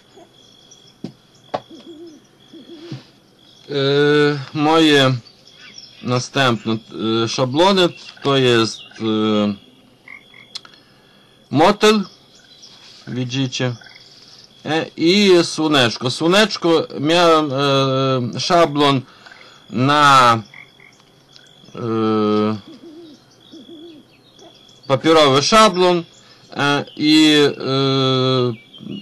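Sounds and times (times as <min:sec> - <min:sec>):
faint high-pitched whine: 0:00.0 - 0:29.0
man's drawn-out hesitation sound: 0:03.7 - 0:05.2, 0:06.0 - 0:09.6, 0:11.5 - 0:12.1, 0:13.0 - 0:13.8, 0:14.6 - 0:20.5, 0:21.7 - 0:22.7, 0:24.9 - 0:29.0
person speaking: 0:03.7 - 0:05.2, 0:06.0 - 0:09.6, 0:11.5 - 0:12.1, 0:13.0 - 0:13.8, 0:14.6 - 0:20.4, 0:21.7 - 0:22.7, 0:24.9 - 0:29.0
faint click: 0:10.5 - 0:10.8
person humming hesitantly: 0:21.8 - 0:22.6.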